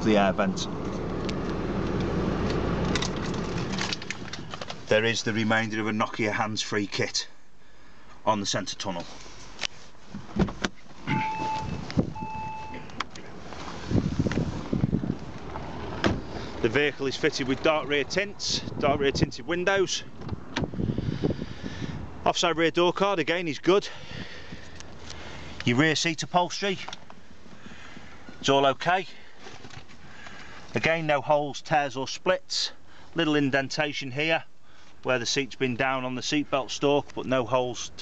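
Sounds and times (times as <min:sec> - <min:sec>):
microphone handling noise: 0:09.7 - 0:16.6.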